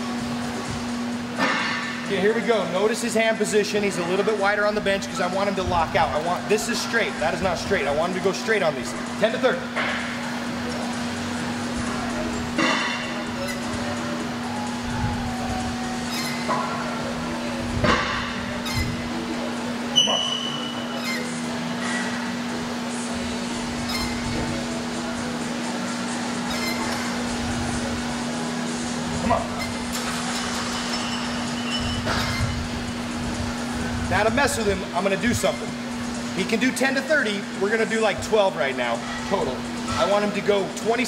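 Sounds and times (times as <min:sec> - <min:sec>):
faint background music: 0:00.0 - 0:41.0
steady electrical hum: 0:00.0 - 0:41.0.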